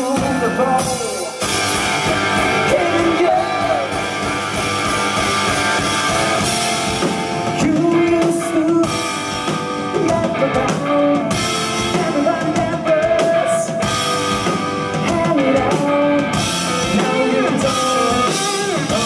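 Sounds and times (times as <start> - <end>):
drum kit: 0.0 - 19.0
electric guitar: 0.0 - 19.0.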